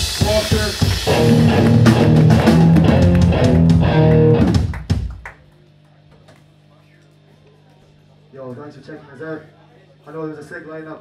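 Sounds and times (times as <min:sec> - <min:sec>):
hardcore band playing live: 0:00.0 - 0:05.2.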